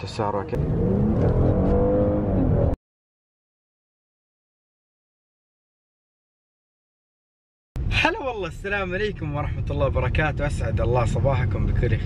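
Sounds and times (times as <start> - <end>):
car engine accelerating: 0.0 - 2.8.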